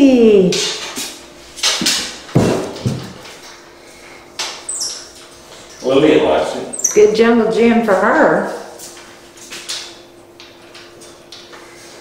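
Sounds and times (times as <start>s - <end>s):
thumps on metal shelf frame: 1.6s - 3.2s.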